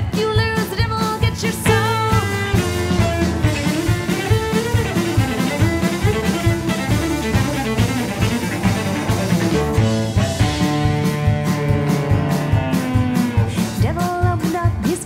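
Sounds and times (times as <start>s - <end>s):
country-rock band playing: 0.0s - 15.0s
bowed cello melody: 3.4s - 13.6s.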